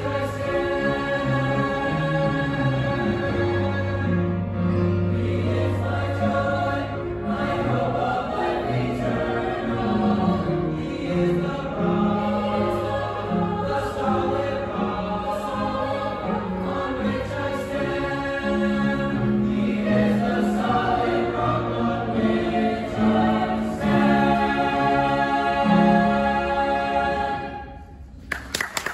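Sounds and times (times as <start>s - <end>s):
choir singing in harmony: 0.0s - 28.1s.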